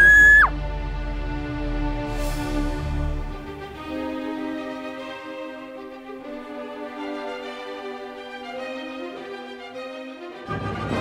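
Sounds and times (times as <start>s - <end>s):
high-pitched scream: 0.0s - 0.5s
background music with sustained notes: 0.0s - 11.0s.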